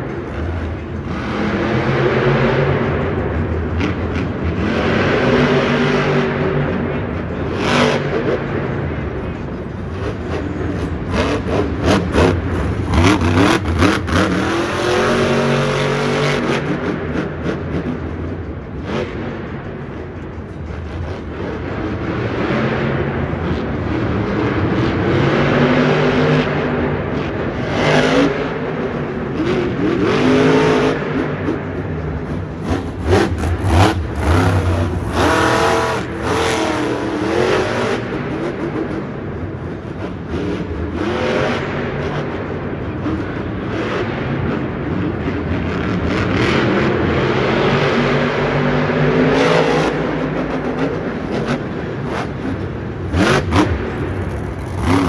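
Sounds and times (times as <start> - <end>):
monster truck engine revving: 0.2 - 55.0.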